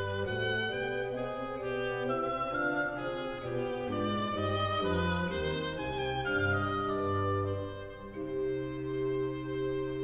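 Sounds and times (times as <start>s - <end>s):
solo oboe melody: 0.0s - 10.0s
strings and continuo: 0.0s - 10.0s.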